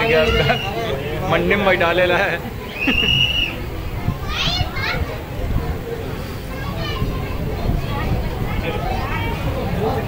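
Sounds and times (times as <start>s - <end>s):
crowd murmur: 0.0s - 10.0s
children squealing and shrieking: 2.7s - 5.2s.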